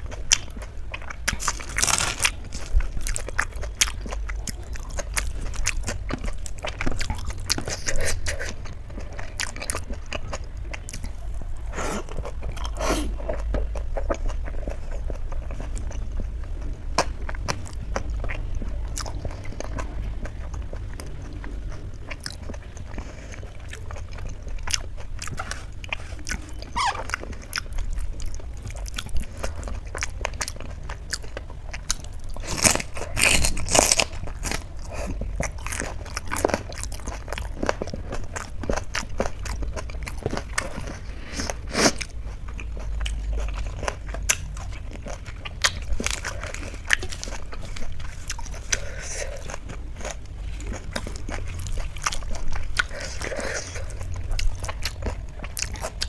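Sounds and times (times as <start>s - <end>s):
crunching: 0.0s - 56.0s
person chewing: 0.0s - 56.0s
steady low hum: 0.0s - 56.0s.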